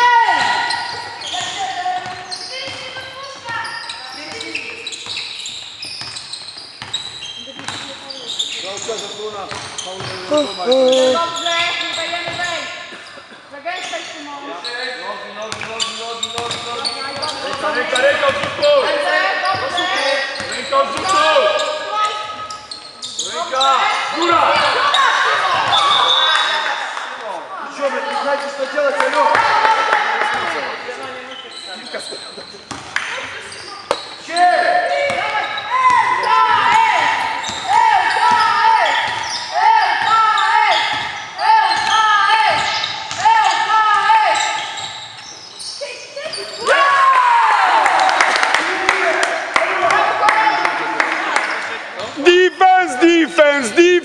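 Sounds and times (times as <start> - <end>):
basketball bouncing on court: 0.3 - 8.0, 8.8 - 10.3, 15.5 - 18.7, 32.7 - 34.1, 35.0 - 43.6
spectators shouting and chanting: 46.6 - 54.0.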